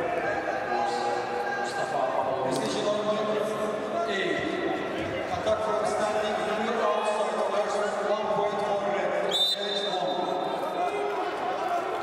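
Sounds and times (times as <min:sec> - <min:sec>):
referee's whistle: 0:09.3 - 0:10.5.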